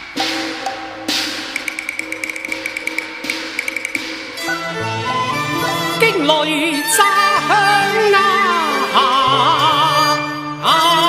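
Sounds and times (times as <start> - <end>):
rapid light tapping: 1.5 - 4.3.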